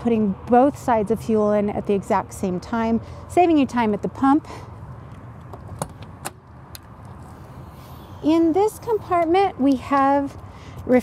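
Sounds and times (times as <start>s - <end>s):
low steady background rumble: 0.0s - 11.0s.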